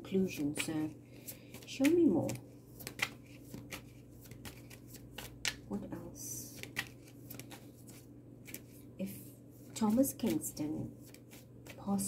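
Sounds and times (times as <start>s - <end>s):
cards being shuffled: 0.4s - 5.7s, 6.4s - 12.0s.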